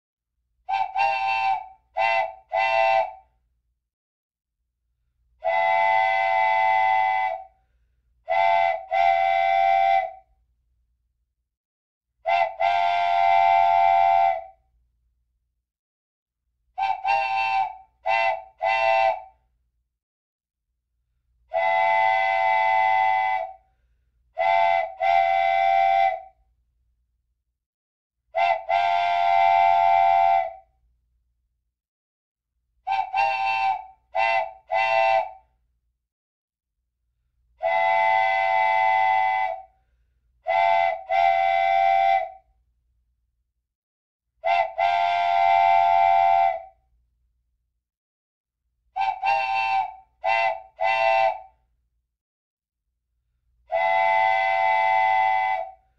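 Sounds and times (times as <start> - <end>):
whistle toots on a chord: 49.0 - 51.6, 53.7 - 55.9.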